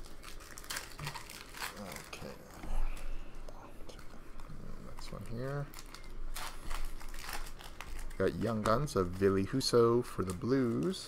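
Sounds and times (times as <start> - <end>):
card pack wrappers crinkling: 0.0 - 3.3, 4.0 - 11.0.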